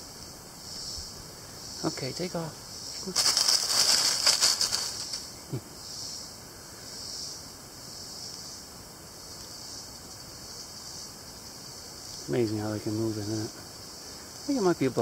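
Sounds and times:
insect chorus: 0.0 - 15.0
dry leaves crackling and rustling: 3.0 - 5.5.

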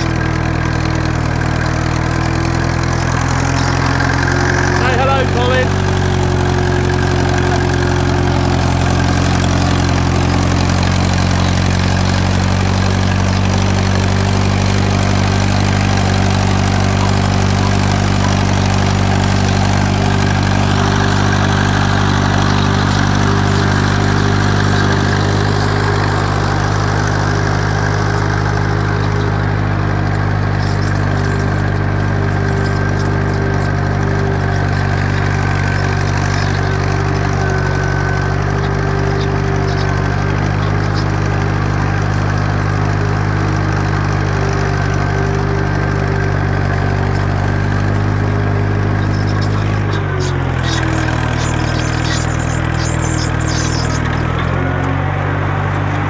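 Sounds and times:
tractor diesel engine under load: 0.0 - 56.0.

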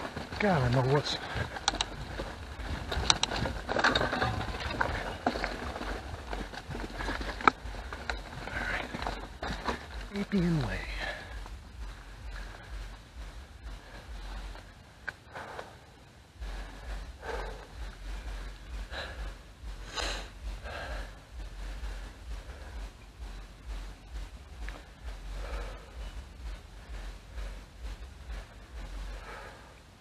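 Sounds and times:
bike rattles and clicks: 0.0 - 30.0
bike rolling on dirt trail: 0.0 - 30.0
low microphone rumble: 0.0 - 30.0
person breathing: 1.2 - 30.0.

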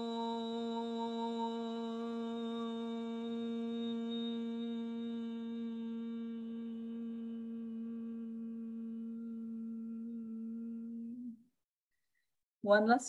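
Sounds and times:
woman chanting hummed note: 0.0 - 11.4.

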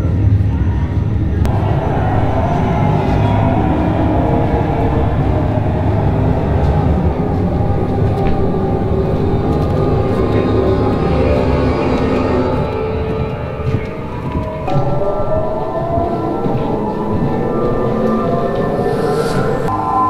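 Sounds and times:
deep ambient drone: 0.0 - 20.0.

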